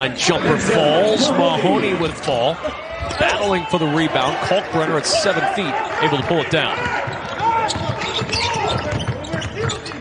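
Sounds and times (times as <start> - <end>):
voices in an arena: 0.0 - 10.0.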